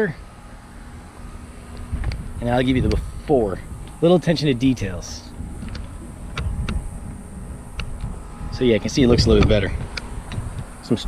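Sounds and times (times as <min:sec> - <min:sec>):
wind rumbling on microphone: 0:01.0 - 0:11.0.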